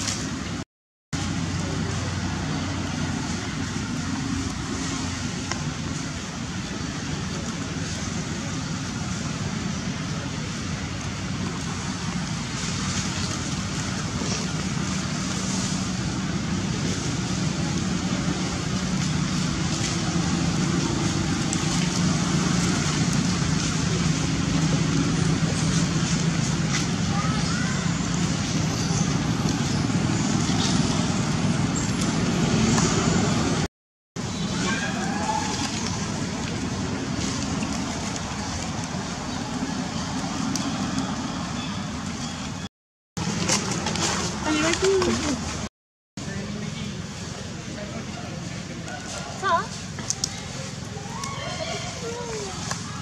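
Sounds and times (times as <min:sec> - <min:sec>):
distant road traffic hum: 0:01.2 - 0:53.0.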